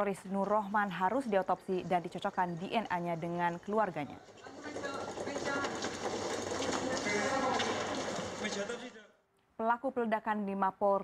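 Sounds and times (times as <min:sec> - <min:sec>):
stretcher trolley rattling on tiles: 0:01.1 - 0:08.9.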